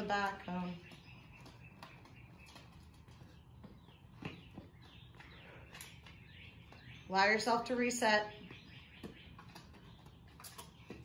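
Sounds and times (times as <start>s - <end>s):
sneakers running on concrete: 0.0s - 7.3s.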